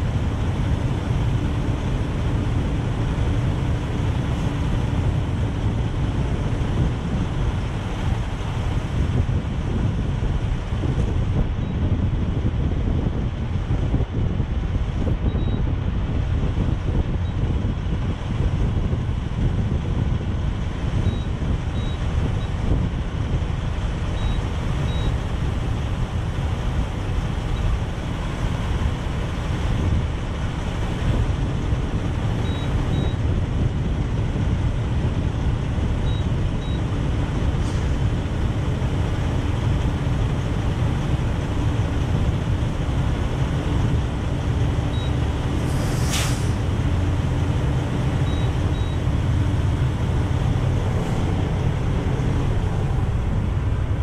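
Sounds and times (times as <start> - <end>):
diesel truck engines idling: 0.0 - 54.0
short hiss: 45.6 - 46.6.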